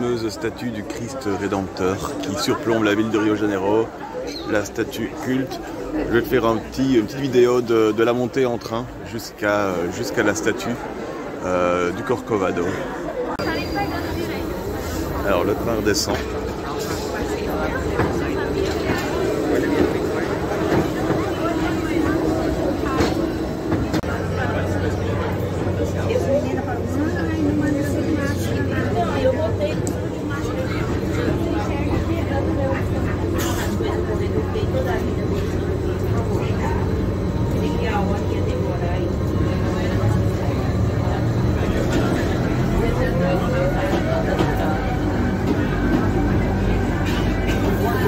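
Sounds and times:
people talking: 0.0s - 48.0s
train running hum: 4.7s - 48.0s.

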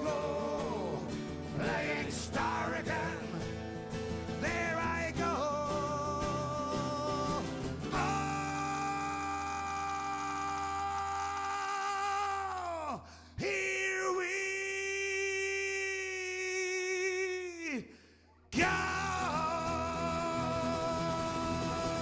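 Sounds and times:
man singing long notes: 0.0s - 3.5s, 4.4s - 17.9s, 18.6s - 22.0s
acoustic guitars playing: 0.0s - 10.8s, 18.6s - 22.0s.

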